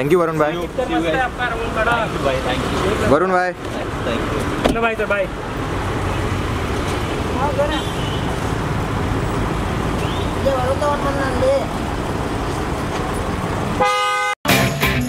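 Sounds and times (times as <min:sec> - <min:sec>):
street traffic noise: 0:00.0 - 0:15.0.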